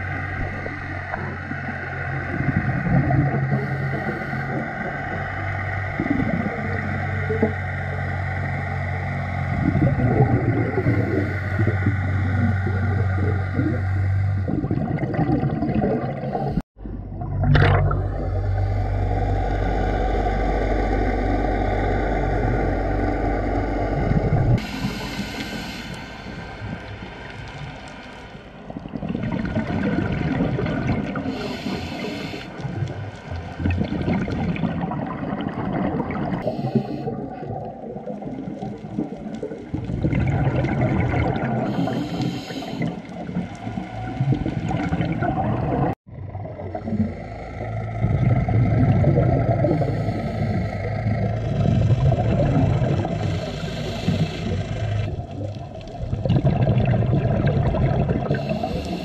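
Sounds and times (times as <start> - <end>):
underwater regulator bubbles: 0.0 - 59.0
steady low hum: 16.3 - 35.4, 40.2 - 57.4.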